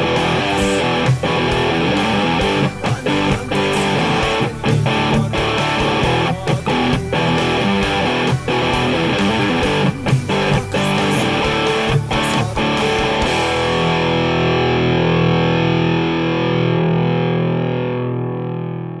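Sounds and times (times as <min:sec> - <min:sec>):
electric guitar picked notes: 0:00.0 - 0:19.0.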